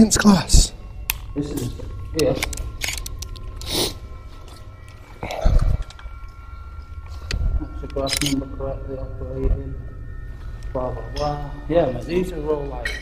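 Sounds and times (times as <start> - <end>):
low rumble: 0.0 - 13.0
camera rig handling rustles: 2.4 - 3.5.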